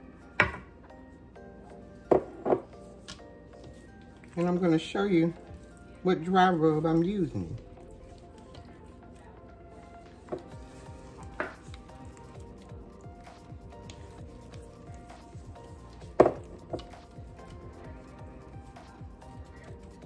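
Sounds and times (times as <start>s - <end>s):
quiet background music: 0.0s - 20.0s
gloved hands squishing meat: 9.9s - 20.0s.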